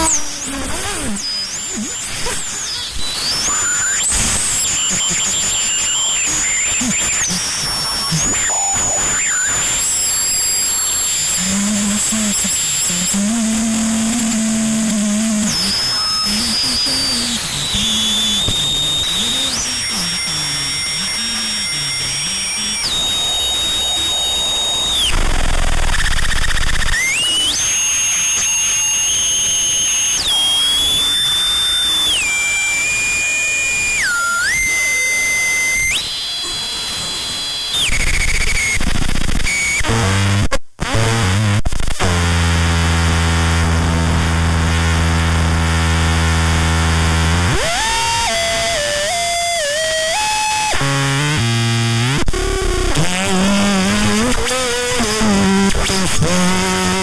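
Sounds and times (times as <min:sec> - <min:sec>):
low buzzing drone: 0:11.2 - 0:36.0
high whistling tones: 0:15.5 - 0:36.4
harsh hiss: 0:15.6 - 0:29.2.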